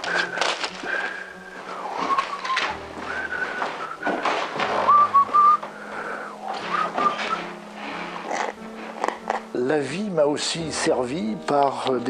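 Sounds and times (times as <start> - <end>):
person whistling a tune: 0.0 - 7.6.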